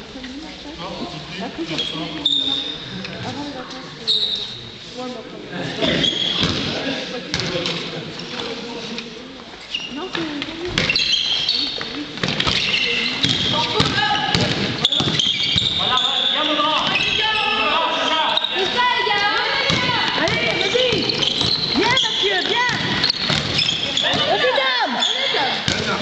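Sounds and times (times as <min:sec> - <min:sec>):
basketball bouncing on hard floor: 0:12.2 - 0:15.6, 0:19.6 - 0:24.3.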